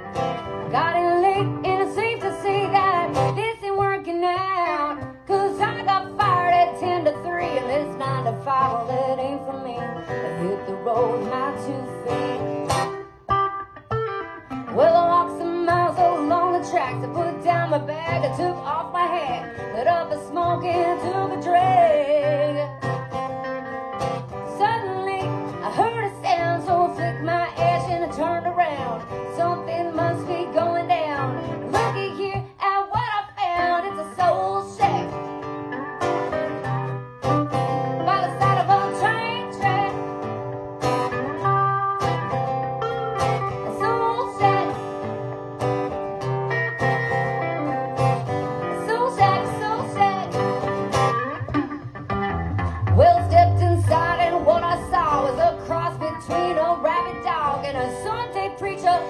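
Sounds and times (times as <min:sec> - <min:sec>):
acoustic guitars playing blues: 0:00.0 - 0:59.0.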